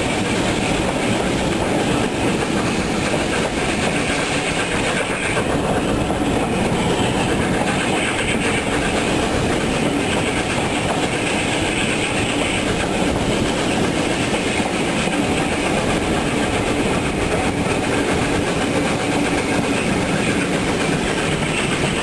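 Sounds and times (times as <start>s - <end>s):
train wheels on rail: 0.0s - 22.0s.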